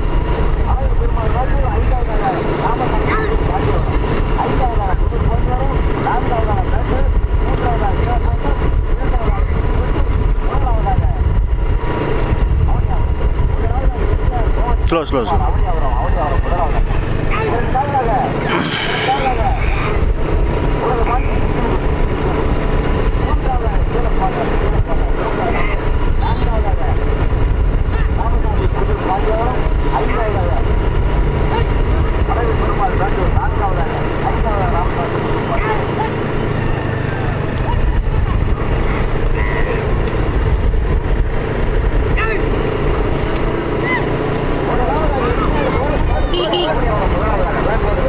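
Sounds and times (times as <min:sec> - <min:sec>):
vehicle engines running: 0:00.0 - 0:48.0
voices shouting and calling: 0:00.3 - 0:11.3, 0:12.8 - 0:48.0.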